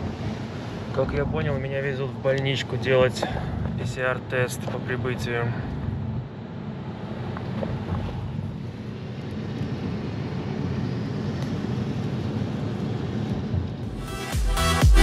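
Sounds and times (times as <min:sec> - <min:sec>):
car road rumble: 0:00.0 - 0:14.1.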